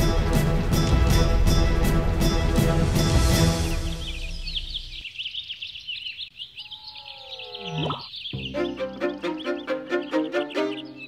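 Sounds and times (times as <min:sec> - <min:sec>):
background music: 0:00.0 - 0:05.0, 0:08.4 - 0:11.0
birds chirping: 0:03.2 - 0:11.0.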